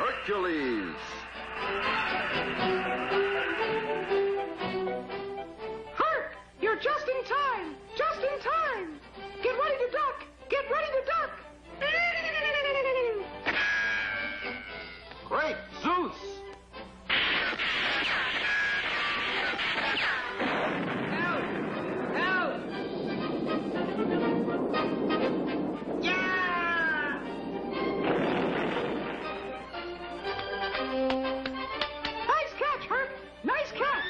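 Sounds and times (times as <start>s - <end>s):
action sound effects: 0.0s - 4.8s, 17.1s - 22.9s
dramatic cartoon music: 0.0s - 6.4s, 10.9s - 34.0s
wordless cries: 1.0s - 4.5s.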